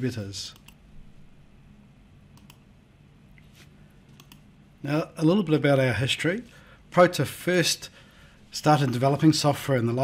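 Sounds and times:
man speaking: 0.0 - 0.6, 4.8 - 10.0
low room hum: 0.0 - 10.0
faint scattered clicks: 0.5 - 0.8, 2.3 - 2.7, 4.1 - 4.5.

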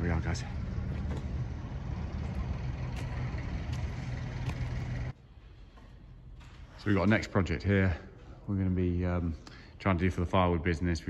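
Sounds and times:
low mechanical engine drone: 0.0 - 5.2.

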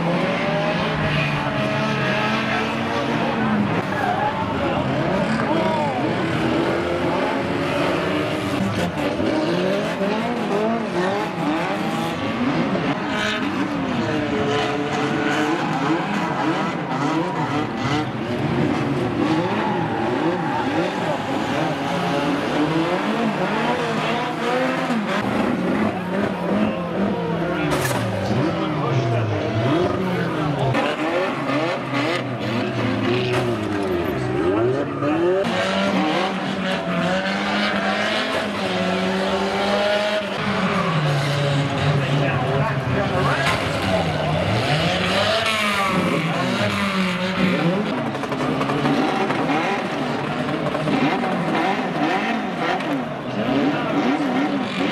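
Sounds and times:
racing car engines revving: 0.0 - 54.9.

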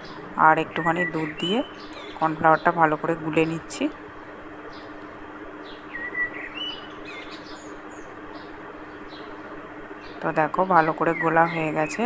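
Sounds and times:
small birds chirping: 0.0 - 3.8, 4.6 - 12.0.

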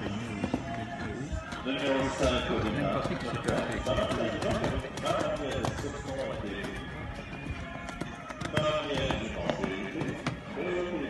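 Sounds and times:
horse hoofbeats on sand: 0.0 - 11.0
music: 0.0 - 11.0.

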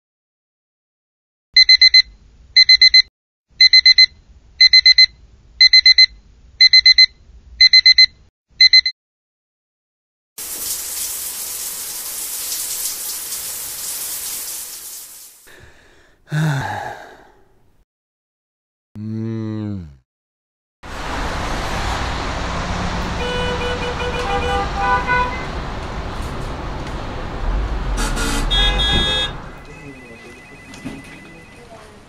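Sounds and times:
alarm clock beeping: 1.6 - 8.9, 29.7 - 31.5
shower running: 10.4 - 15.5.

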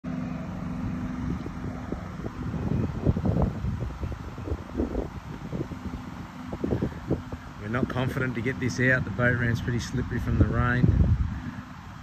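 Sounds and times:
low engine hum: 0.0 - 12.0
wind buffeting microphone: 0.5 - 12.0.

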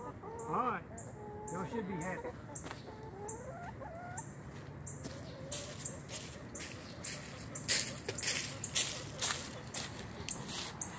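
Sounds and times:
hen clucking: 0.0 - 10.9
footsteps crunching dry leaves: 4.5 - 10.9.

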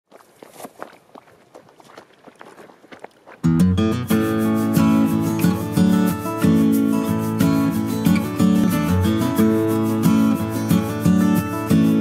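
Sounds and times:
footsteps on gravel: 0.1 - 5.0
acoustic guitar music: 3.4 - 12.0.

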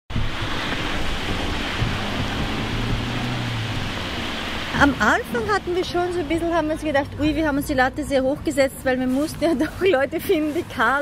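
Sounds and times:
rain hissing: 0.1 - 6.9.

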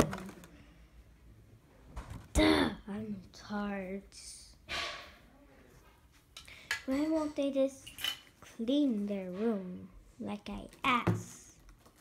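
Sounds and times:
child speaking: 2.4 - 4.6, 6.8 - 11.6.

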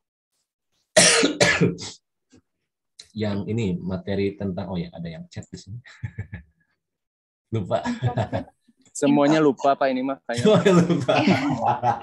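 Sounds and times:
person clearing throat and coughing: 1.0 - 2.0.

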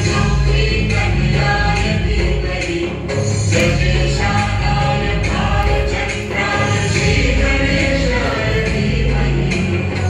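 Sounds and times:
loud music with singing: 0.0 - 10.0
steady bass notes: 0.0 - 10.0.

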